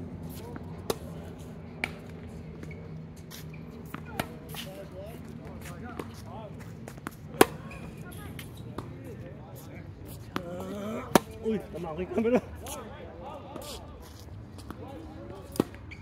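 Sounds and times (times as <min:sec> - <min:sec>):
faint voices: 0:03.6 - 0:15.8
tennis ball hit by rackets: 0:03.9 - 0:04.7, 0:06.9 - 0:08.9, 0:10.3 - 0:11.4, 0:15.5 - 0:15.8.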